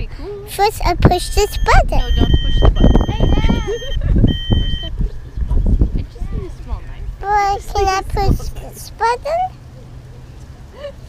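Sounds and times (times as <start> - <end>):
voice fragments: 0.5 - 3.8, 7.2 - 9.5
electronic beep: 1.2 - 4.9.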